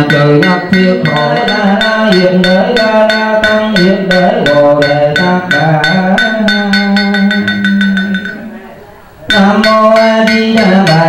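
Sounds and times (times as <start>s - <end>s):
ringing bell tones: 0.0s - 8.6s, 9.3s - 11.0s
quick steady percussion strikes: 0.0s - 11.0s.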